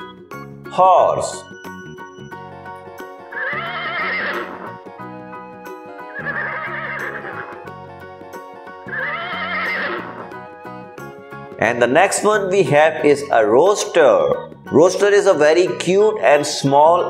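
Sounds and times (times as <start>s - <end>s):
background music: 0.0s - 17.0s
horse whinnying: 3.2s - 5.0s, 6.0s - 8.0s, 8.8s - 10.6s.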